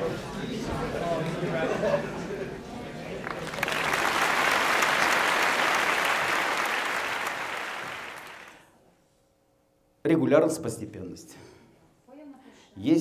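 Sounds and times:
audience applauding: 3.2s - 8.7s.

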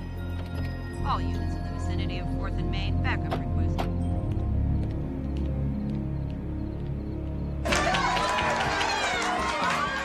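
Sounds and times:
background music: 0.0s - 10.0s
crowd shouting and cheering: 7.6s - 10.0s.

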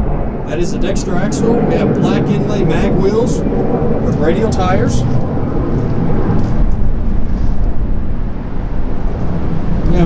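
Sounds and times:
low rumble of outdoor noise: 0.0s - 10.0s.

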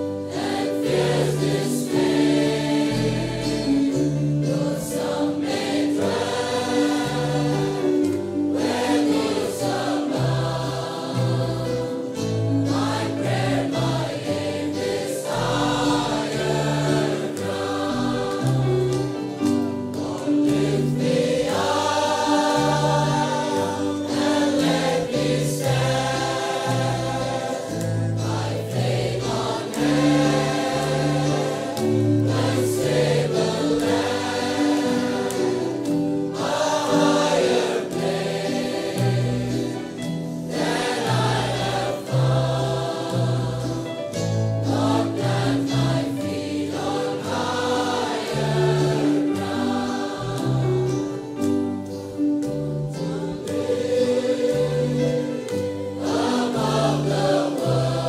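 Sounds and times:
choir singing gospel: 0.0s - 58.0s
low instrumental backing: 0.0s - 58.0s.

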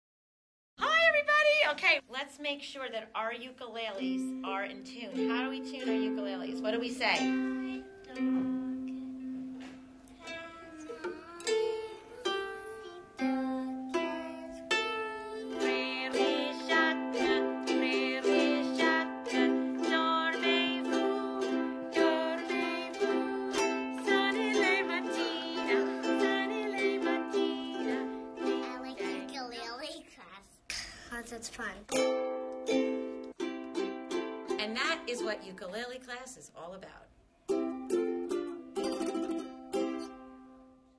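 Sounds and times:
ukulele music: 4.0s - 29.8s, 31.9s - 35.7s, 37.5s - 40.9s
person singing wavering notes: 10.2s - 28.3s.

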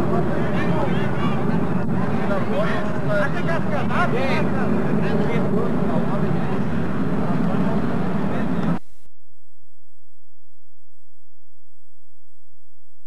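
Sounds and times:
indistinct chatter of people: 0.0s - 8.8s
steady low rumble: 0.0s - 13.0s.

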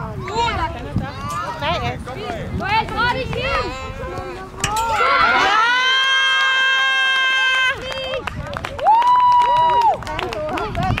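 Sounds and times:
chatter: 0.0s - 11.0s.

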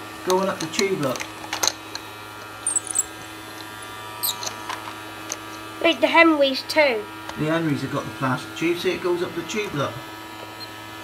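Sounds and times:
toy vacuum cleaner motor humming: 0.0s - 6.0s, 8.6s - 11.0s.

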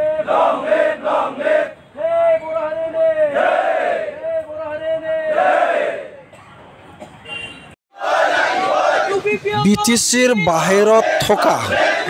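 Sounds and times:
protesters chanting: 0.0s - 2.1s, 3.1s - 4.3s, 5.2s - 6.2s, 8.0s - 12.0s.

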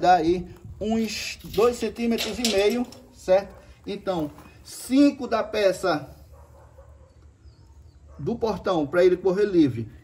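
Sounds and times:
faint high bird chirp: 6.9s - 8.3s.

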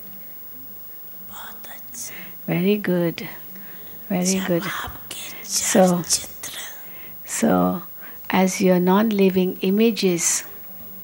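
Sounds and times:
faint steady hum: 0.0s - 11.0s
breathy whispered voice: 1.3s - 2.4s, 3.8s - 6.9s.

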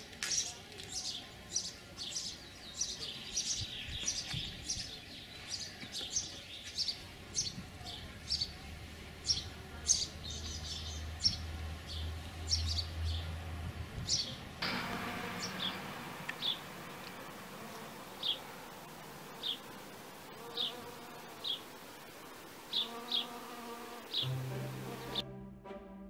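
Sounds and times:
honeybee buzzing: 14.6s - 25.2s.

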